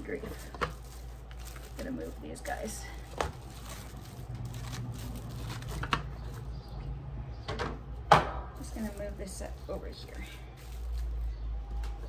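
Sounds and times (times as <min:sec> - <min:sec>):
plastic film rustling: 0:00.0 - 0:06.8, 0:08.6 - 0:12.0.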